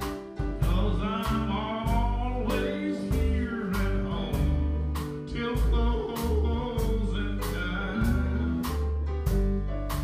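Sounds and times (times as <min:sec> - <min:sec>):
drum hits: 0:00.0 - 0:10.0
live country band: 0:00.0 - 0:10.0.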